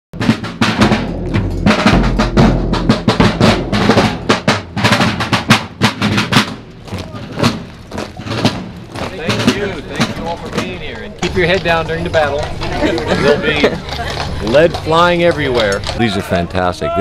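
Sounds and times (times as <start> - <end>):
marching drums with rolls: 0.2 - 17.0.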